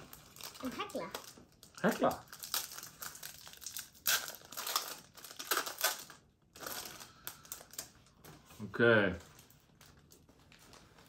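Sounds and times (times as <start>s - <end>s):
foil wrapper crinkling: 0.0s - 8.1s.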